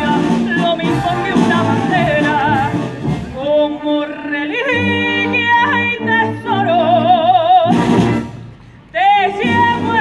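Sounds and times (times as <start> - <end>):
woman singing: 0.0 - 8.1, 8.9 - 10.0
wind band with brass: 0.0 - 10.0.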